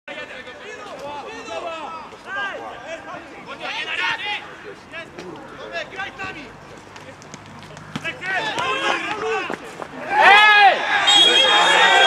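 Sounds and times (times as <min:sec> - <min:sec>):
players shouting and calling: 0:00.1 - 0:12.0.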